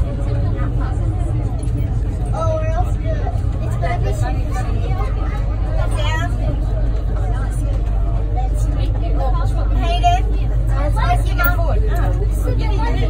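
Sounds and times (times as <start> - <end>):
train low rumble: 0.0 - 13.0.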